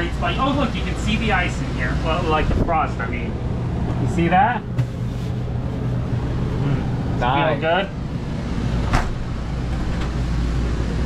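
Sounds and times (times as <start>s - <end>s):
air conditioner running: 0.0s - 11.0s.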